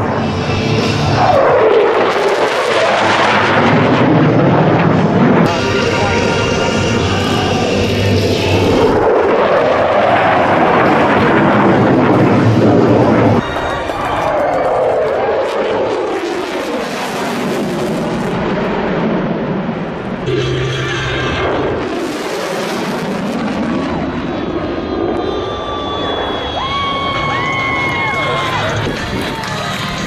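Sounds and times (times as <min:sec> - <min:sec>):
fighter jet engines roaring: 0:00.0 - 0:30.0
jet passing close overhead: 0:00.0 - 0:30.0.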